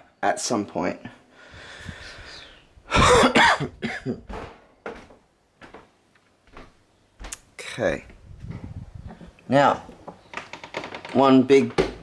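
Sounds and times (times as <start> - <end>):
man coughing: 2.9 - 4.3.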